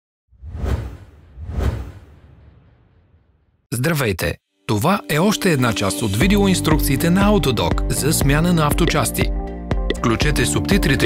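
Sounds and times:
whoosh sound effects: 0:00.3 - 0:03.6.

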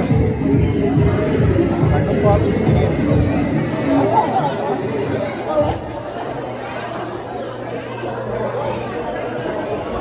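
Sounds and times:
voices chattering: 0:00.0 - 0:10.0.

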